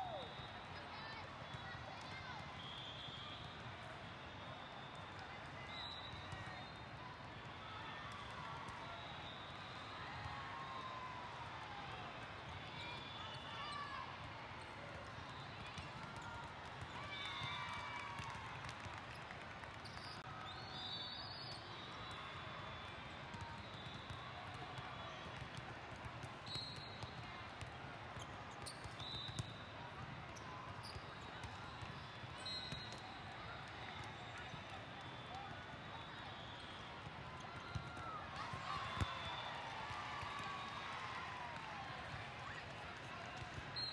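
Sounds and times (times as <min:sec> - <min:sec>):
court shoes squeaking: 0:26.2 - 0:27.2, 0:28.2 - 0:33.2.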